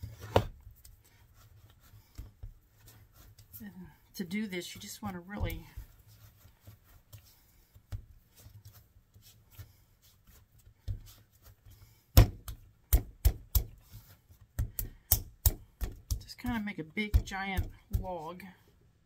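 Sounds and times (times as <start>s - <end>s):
hands rubbing clay: 0.0s - 18.8s.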